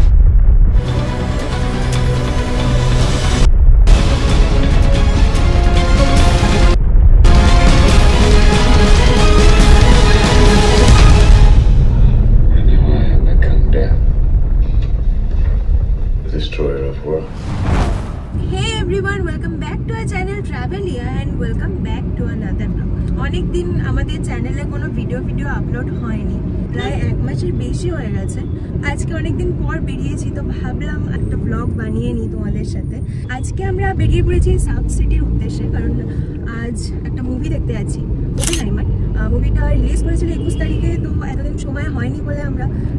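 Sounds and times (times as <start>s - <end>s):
deep low explosion rumble: 0.0s - 19.4s, 33.0s - 42.9s
woman talking: 18.4s - 42.9s.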